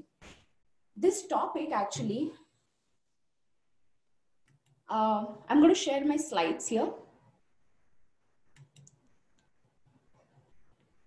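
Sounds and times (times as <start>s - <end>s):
faint computer clicks: 8.5s - 9.5s.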